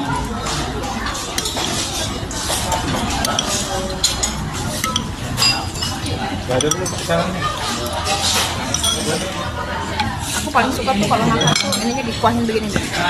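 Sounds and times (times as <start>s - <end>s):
cutlery clinking on plate: 0.5s - 10.2s, 11.2s - 12.1s.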